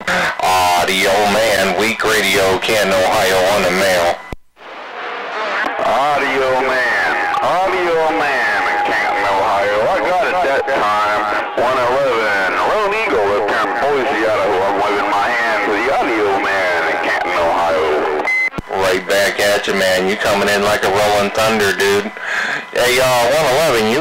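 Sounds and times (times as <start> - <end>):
garbled voices over radio: 0.0 - 4.2, 5.0 - 24.0.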